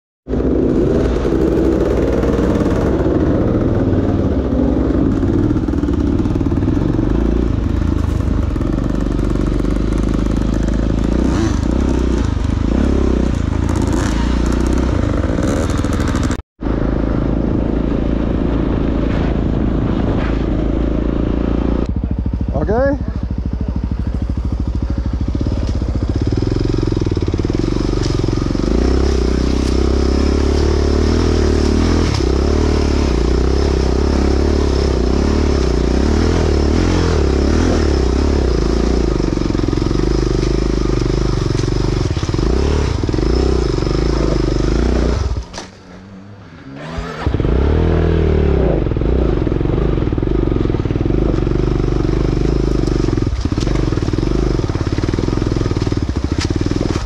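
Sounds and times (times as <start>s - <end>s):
dirt bike engines revving: 0.3s - 57.0s.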